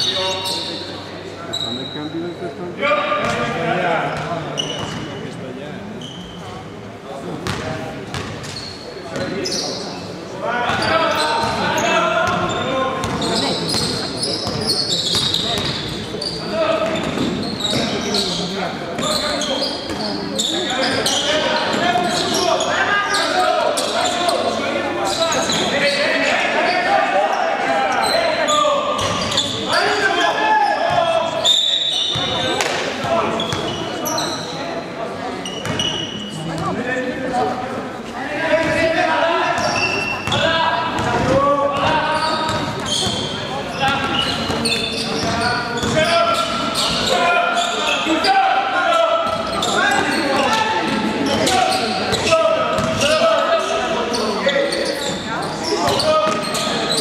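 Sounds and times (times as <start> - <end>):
basketball bouncing on court: 7.4 - 8.6, 12.2 - 15.9, 52.1 - 53.1
shouting and chatter: 8.6 - 57.0.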